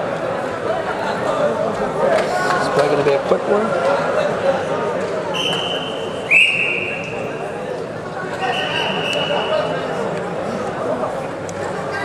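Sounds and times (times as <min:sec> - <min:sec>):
crowd murmur: 0:00.0 - 0:12.0
referee whistle blasts: 0:05.3 - 0:07.2, 0:08.4 - 0:09.7.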